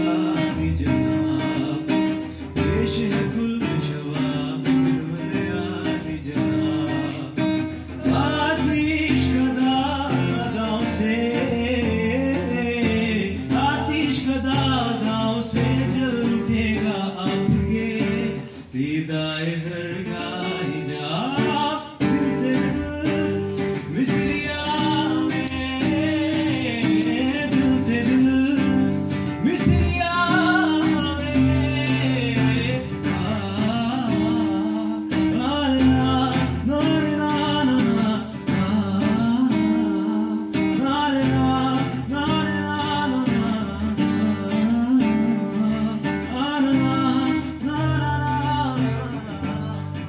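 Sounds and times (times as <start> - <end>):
acoustic guitar strumming chords: 0.0 - 50.0.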